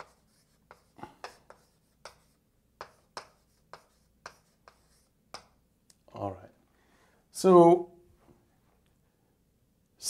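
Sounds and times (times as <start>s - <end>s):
chalk tapping and writing on board: 0.0s - 5.6s.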